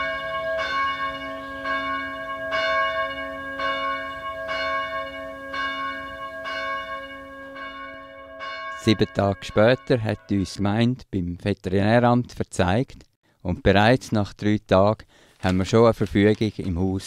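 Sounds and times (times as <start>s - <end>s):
church bell tolling: 0.0s - 10.6s.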